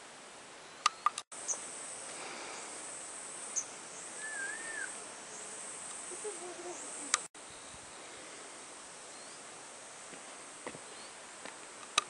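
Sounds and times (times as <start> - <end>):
steady outdoor hiss: 0.0 - 12.0
short wavering whistle: 4.2 - 5.0.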